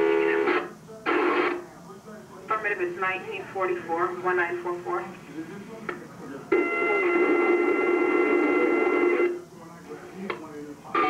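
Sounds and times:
scanner radio transmission: 0:00.0 - 0:11.0.

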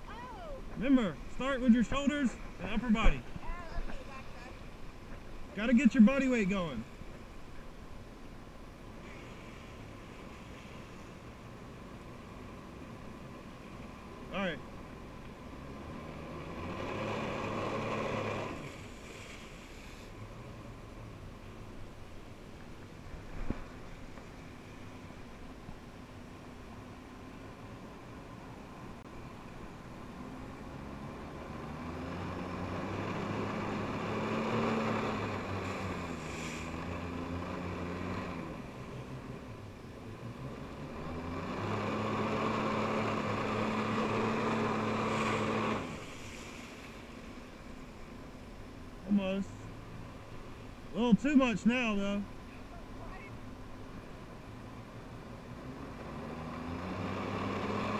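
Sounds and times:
watercraft engine revving: 0:11.4 - 0:21.8, 0:30.0 - 0:48.2, 0:54.5 - 0:57.9
water rushing: 0:29.4 - 0:54.6.

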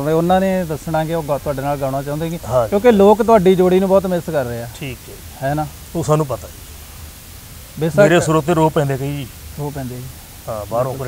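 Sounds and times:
man talking: 0:00.0 - 0:06.6, 0:07.8 - 0:11.0
faint steady hiss: 0:00.0 - 0:11.0.

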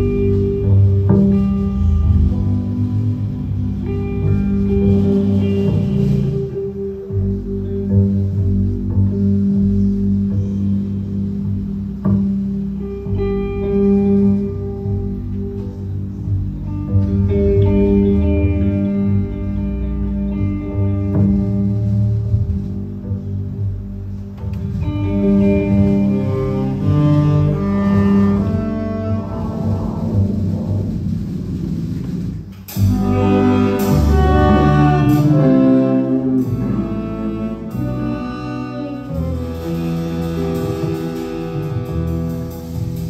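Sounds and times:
live instrumental band: 0:00.0 - 0:43.0
sustained horn and bass notes: 0:00.0 - 0:43.0.

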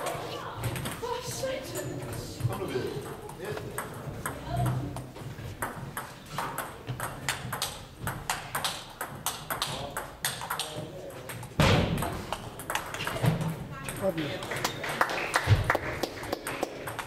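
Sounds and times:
murmur of voices: 0:00.0 - 0:05.7
table tennis balls clicking: 0:00.6 - 0:01.1, 0:01.8 - 0:14.8, 0:16.2 - 0:17.0.

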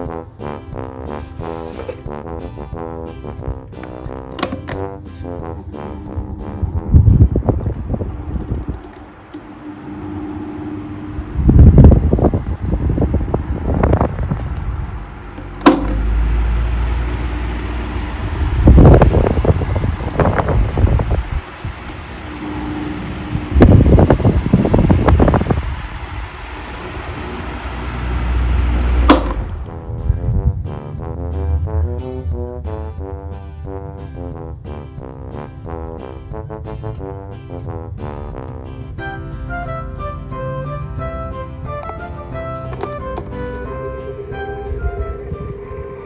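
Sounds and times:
airflow buffeting microphone: 0:00.0 - 0:46.0
desk fan running: 0:03.2 - 0:33.1, 0:38.8 - 0:46.0.

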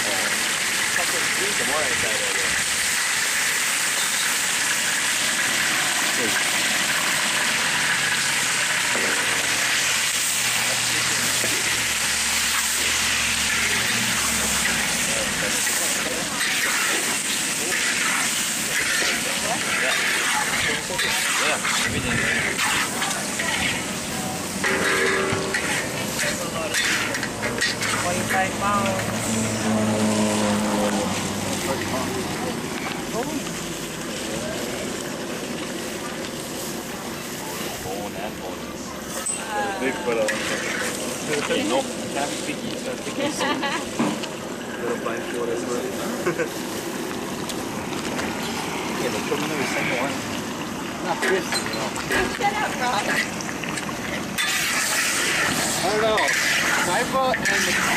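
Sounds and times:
chicken sizzling in hot oil: 0:00.0 - 0:57.9
metal spatulas scraping wok: 0:00.8 - 0:32.1, 0:39.0 - 0:42.5, 0:51.2 - 0:57.9.

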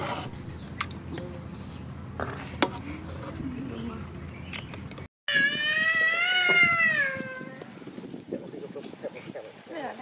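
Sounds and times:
long high-pitched cry: 0:05.3 - 0:07.7.

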